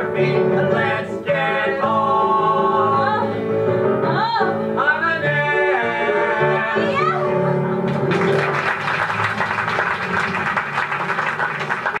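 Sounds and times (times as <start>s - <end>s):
audience applauding: 7.8s - 12.0s.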